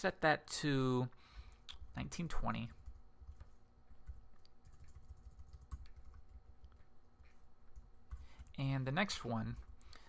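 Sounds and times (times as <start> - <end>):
computer keyboard typing: 2.5 - 9.8.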